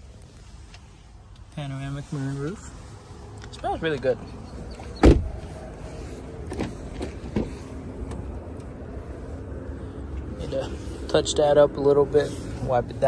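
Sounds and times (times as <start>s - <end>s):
low background rumble: 0.0s - 13.0s
car door shutting: 4.8s - 5.4s, 6.5s - 8.2s.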